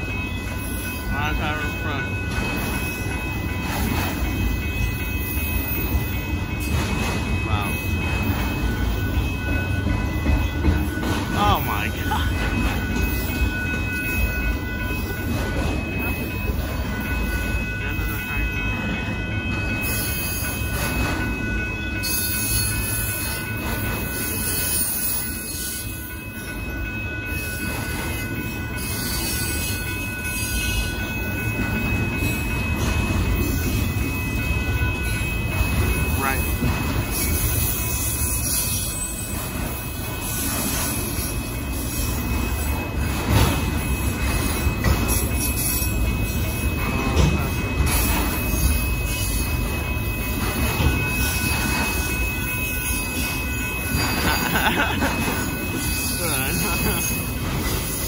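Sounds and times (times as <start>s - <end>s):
freight train rumbling past: 0.0s - 58.0s
high-pitched ringing tones: 0.0s - 58.0s.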